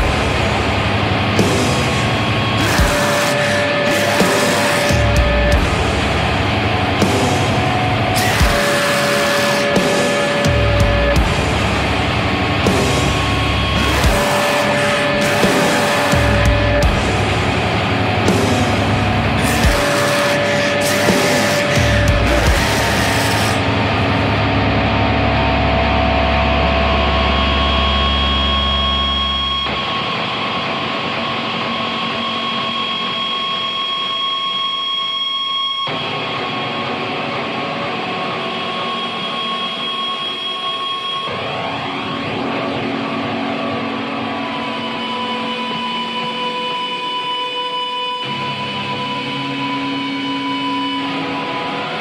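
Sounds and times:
harsh noise drone: 0.0s - 52.0s.

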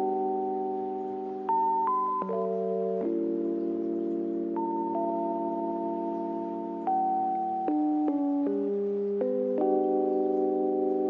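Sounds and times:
soft held chord music: 0.0s - 11.0s.

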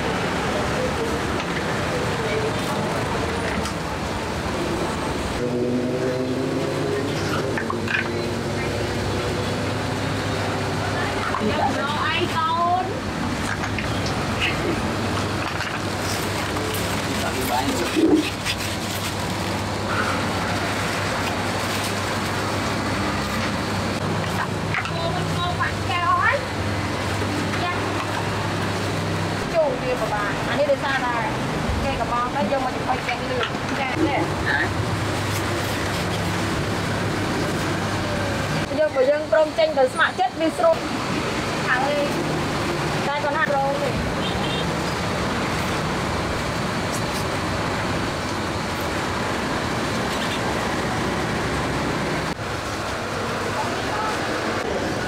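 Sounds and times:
people talking: 0.0s - 3.7s, 10.6s - 13.1s, 16.2s - 18.3s, 24.3s - 26.5s, 27.5s - 28.2s, 29.4s - 34.8s, 38.0s - 41.0s, 41.6s - 42.3s, 42.9s - 44.3s, 53.1s - 55.0s
engine hum: 0.0s - 55.0s
steady traffic noise: 0.0s - 55.0s.

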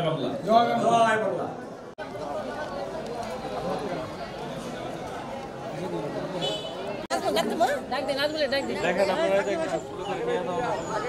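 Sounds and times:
close voices talking: 0.0s - 11.0s
people talking over one another: 0.0s - 11.0s.

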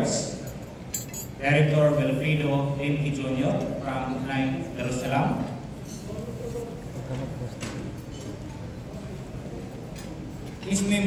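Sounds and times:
man speaking over amplification: 0.0s - 0.6s, 1.2s - 7.7s, 10.6s - 11.0s.

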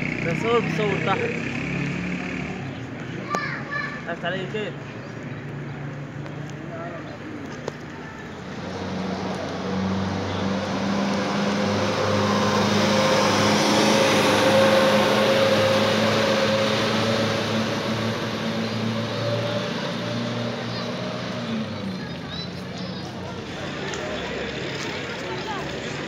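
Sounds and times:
crowd voices in street: 0.0s - 26.0s.

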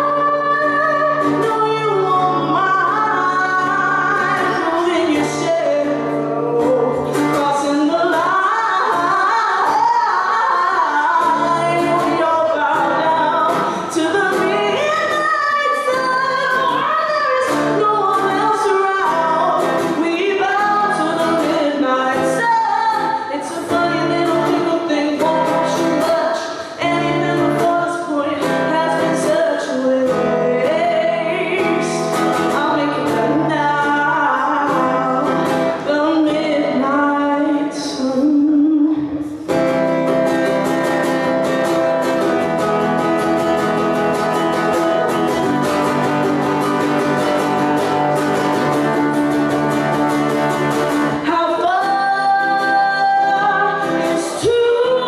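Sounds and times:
woman singing: 0.0s - 55.0s
ukulele strumming: 37.8s - 55.0s.

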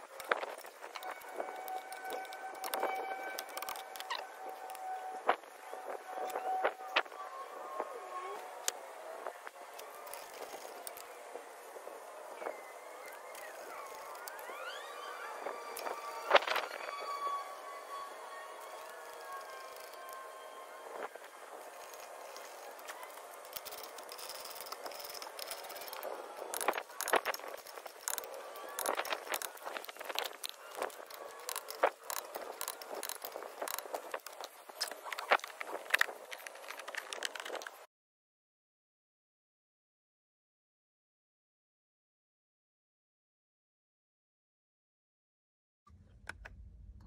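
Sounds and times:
wavering gliding tones: 0.0s - 37.7s
steady high tone: 0.1s - 35.2s.

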